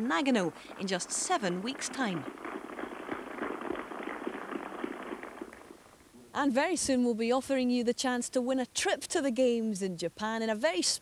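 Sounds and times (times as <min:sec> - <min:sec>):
crowd clapping: 0:00.0 - 0:05.9.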